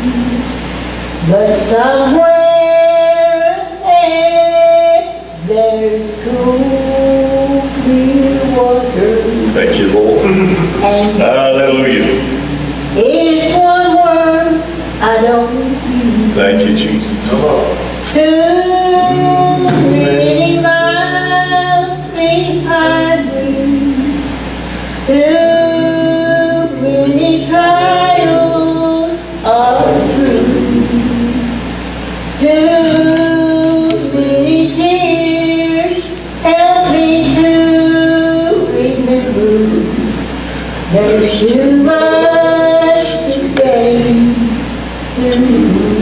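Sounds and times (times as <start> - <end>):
women singing gospel: 0.0 - 46.0.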